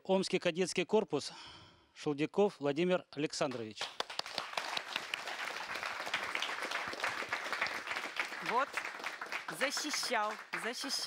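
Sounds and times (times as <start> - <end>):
audience applauding: 3.8 - 11.0.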